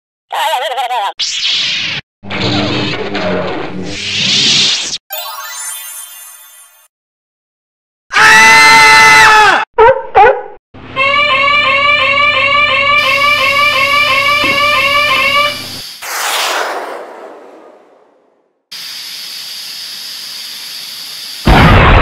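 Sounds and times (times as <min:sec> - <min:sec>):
shimmering electronic sound: 0:05.1 - 0:06.9
loud held electronic tone: 0:12.6 - 0:16.0
warbling alarm tone: 0:12.9 - 0:15.9
hiss: 0:18.7 - 0:21.5.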